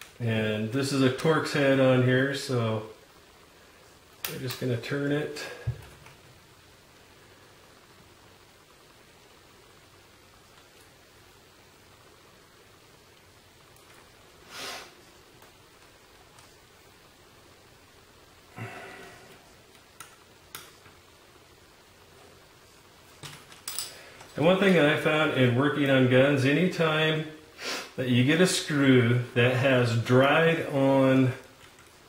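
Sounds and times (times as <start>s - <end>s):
small clicks: 19.7s - 21.0s, 31.6s - 32.0s
handling noise: 23.0s - 25.0s.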